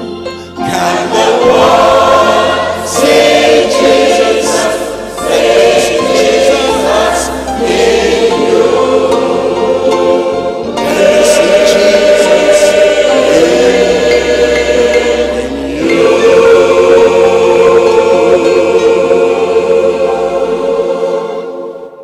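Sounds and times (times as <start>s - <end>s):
gospel choir singing: 0.0s - 22.0s.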